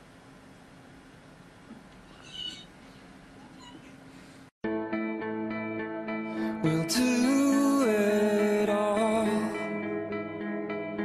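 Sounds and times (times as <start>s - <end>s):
cat meowing: 2.2s - 2.7s
music: 4.6s - 11.0s.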